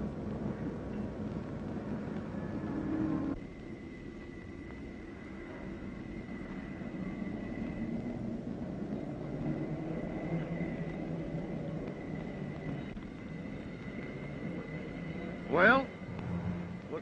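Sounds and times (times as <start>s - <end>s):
low rumbling background noise: 0.0s - 17.0s.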